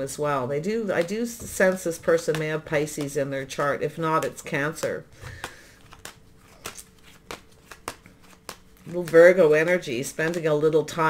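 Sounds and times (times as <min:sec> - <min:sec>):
faint steady hum: 0:00.0 - 0:11.0
cards clicking: 0:01.0 - 0:10.5.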